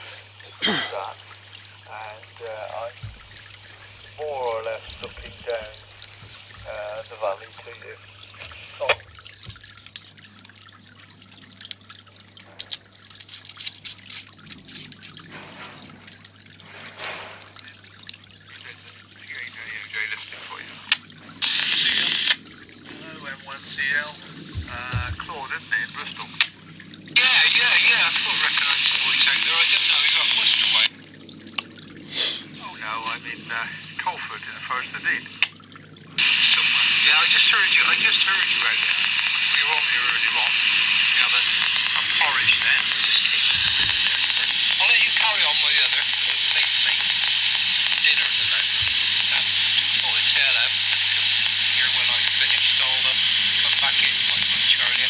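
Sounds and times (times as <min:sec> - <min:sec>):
radio hiss: 0:00.0 - 0:01.2, 0:01.8 - 0:03.0, 0:04.1 - 0:09.0, 0:16.8 - 0:17.8, 0:18.5 - 0:26.6, 0:27.2 - 0:31.0, 0:32.1 - 0:35.5, 0:36.2 - 0:55.0
garbled radio voice: 0:00.0 - 0:01.3, 0:01.9 - 0:03.1, 0:04.1 - 0:05.8, 0:06.6 - 0:09.1, 0:18.5 - 0:26.6, 0:27.2 - 0:31.0, 0:32.2 - 0:35.5, 0:36.2 - 0:55.0
steady low hum: 0:00.0 - 0:55.0.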